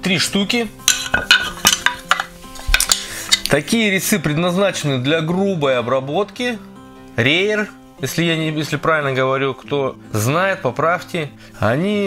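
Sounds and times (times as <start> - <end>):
metal chisels clinking: 0.9 - 3.5.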